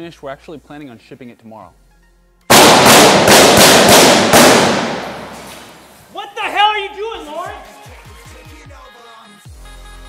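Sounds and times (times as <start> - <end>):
rapid gunshots with echo: 2.5 - 6.0.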